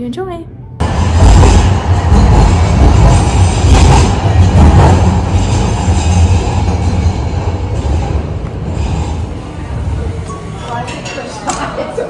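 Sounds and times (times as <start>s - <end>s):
low rumble of city street: 0.0s - 12.0s.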